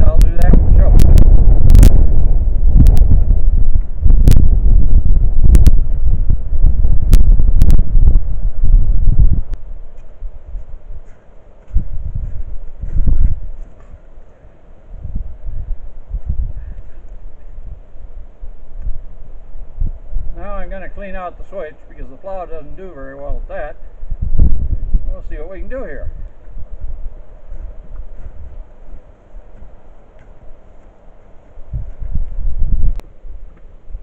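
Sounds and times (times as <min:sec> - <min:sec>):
wind buffeting microphone: 0:00.0 - 0:34.0.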